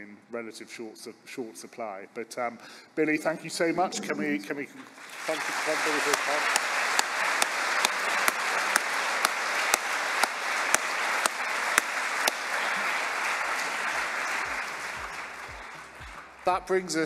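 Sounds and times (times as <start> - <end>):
audience applauding: 4.1 - 17.0
louder sharper claps: 5.0 - 16.7.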